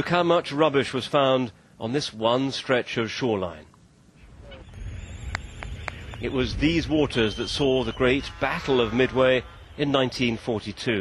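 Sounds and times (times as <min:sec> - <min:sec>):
low outdoor rumble: 0:03.8 - 0:11.0.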